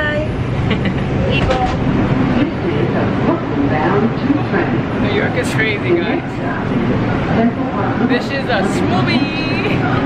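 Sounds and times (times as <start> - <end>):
subway car rumble: 0.0 - 10.0
voices: 0.0 - 10.0.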